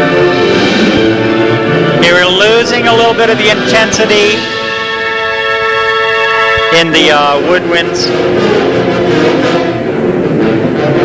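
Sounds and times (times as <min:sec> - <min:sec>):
wind ensemble holding notes: 0:00.0 - 0:11.0.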